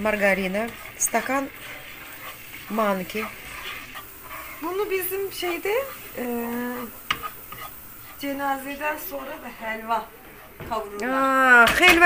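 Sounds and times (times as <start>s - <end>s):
spoon stirring in frying pan: 0.0s - 12.0s.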